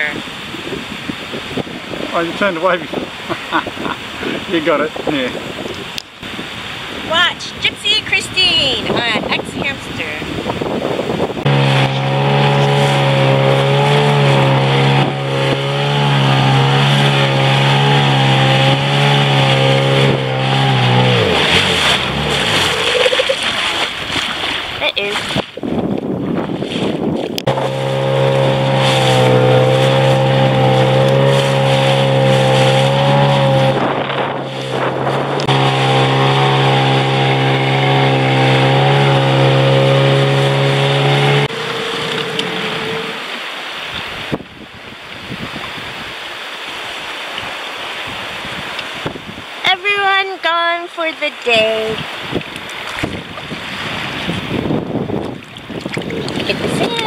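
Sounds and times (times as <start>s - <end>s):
outboard motor running: 0.0s - 44.4s, 49.7s - 57.0s
rushing water: 0.0s - 57.0s
wind: 0.0s - 57.0s.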